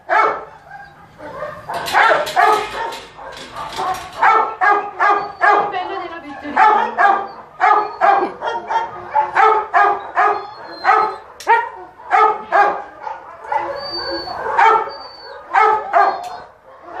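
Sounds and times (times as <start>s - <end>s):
dog barking: 0.0s - 17.0s.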